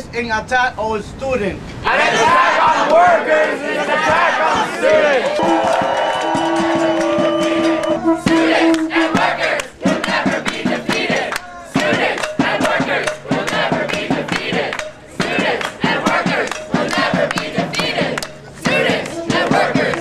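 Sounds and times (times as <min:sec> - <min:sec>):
crowd chanting: 0:01.8 - 0:20.0
drum beats: 0:01.9 - 0:03.2, 0:03.8 - 0:20.0.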